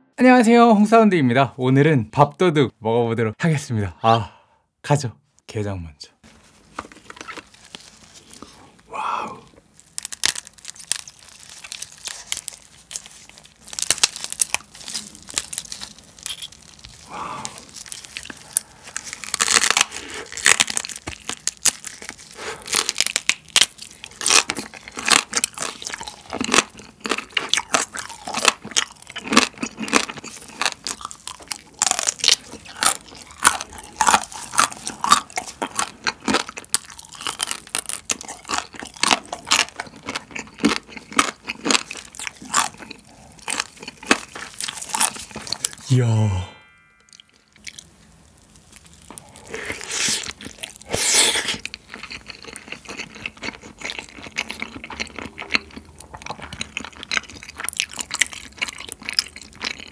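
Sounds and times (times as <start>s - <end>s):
chewing crab legs: 6.9s - 45.9s, 47.2s - 59.9s
crab shell cracking: 9.7s - 45.8s.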